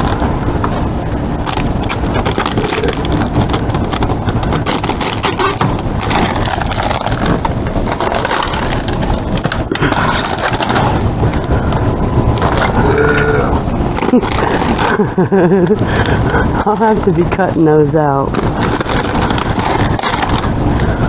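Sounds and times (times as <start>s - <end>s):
low rumble: 0.0s - 21.0s
plastic bags and cardboard rustling: 0.0s - 21.0s.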